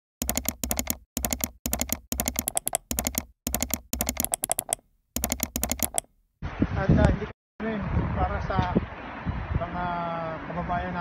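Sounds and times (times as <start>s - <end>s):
keyboard typing clicks: 0.2s - 6.1s.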